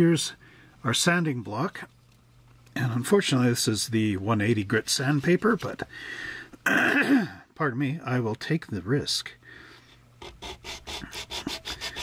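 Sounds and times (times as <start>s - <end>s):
sandpaper sanding plastic: 10.2s - 12.0s.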